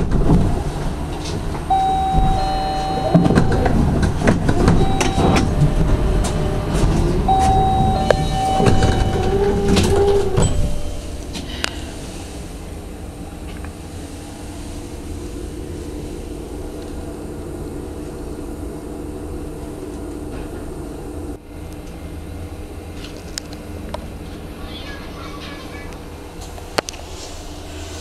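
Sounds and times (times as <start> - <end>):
constant low hum: 0.0 - 28.0
tram wheels rumbling on rail: 0.0 - 28.0.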